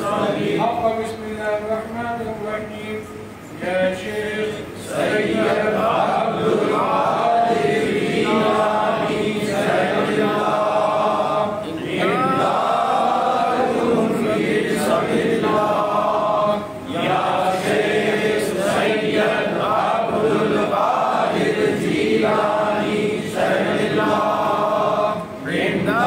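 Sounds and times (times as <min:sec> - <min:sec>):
voices chanting: 0:03.7 - 0:26.0.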